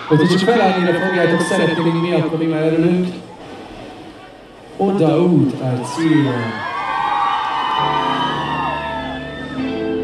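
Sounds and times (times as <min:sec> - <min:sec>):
crowd shouts and whoops: 0:00.0 - 0:02.4, 0:05.8 - 0:10.0.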